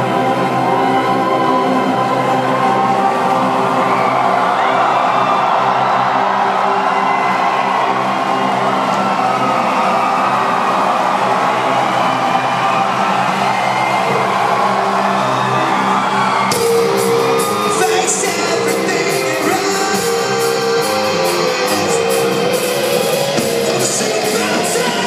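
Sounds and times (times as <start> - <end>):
crowd cheering and whooping: 0.0 - 25.0.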